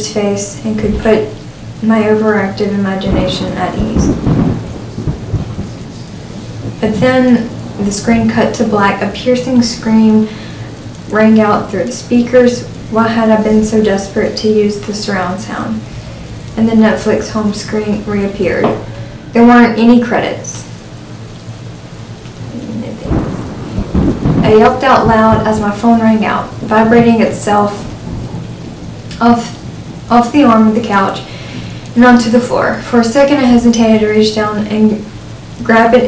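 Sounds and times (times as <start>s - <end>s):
faint steady hiss: 0.0s - 36.0s
steady rain: 0.0s - 36.0s
thunder rumbling: 0.0s - 36.0s
low rumble: 20.6s - 30.0s.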